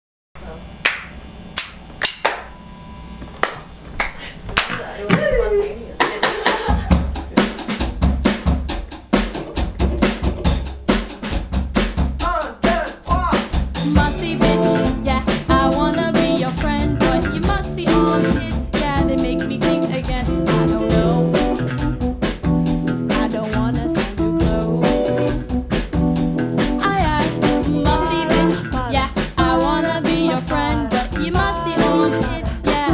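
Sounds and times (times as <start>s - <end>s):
drum kit groove: 6.0s - 32.9s
bass guitar: 11.3s - 32.9s
electric guitar: 13.8s - 32.9s
keyboard: 13.8s - 32.9s.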